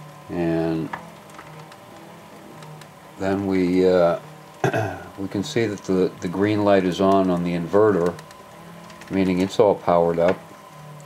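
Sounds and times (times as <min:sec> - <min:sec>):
bicycle tyre spinning motor whir: 0:00.0 - 0:11.0.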